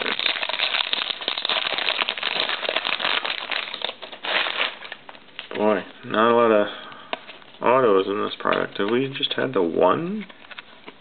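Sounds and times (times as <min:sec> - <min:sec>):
foil wrapper crinkling: 0:00.0 - 0:05.7.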